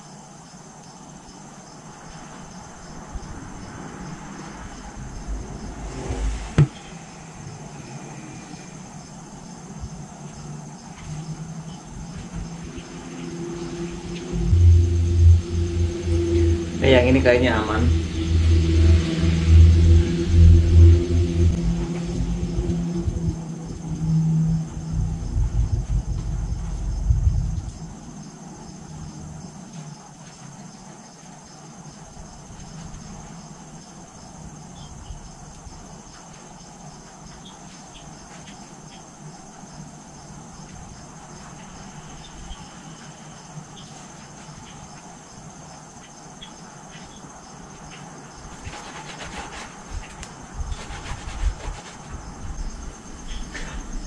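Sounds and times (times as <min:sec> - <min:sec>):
faint hiss: 0:00.0 - 0:22.2
crickets chirping: 0:00.0 - 0:54.0
low engine rumble: 0:02.2 - 0:29.6
sponge rubbing on tyre: 0:48.5 - 0:52.3.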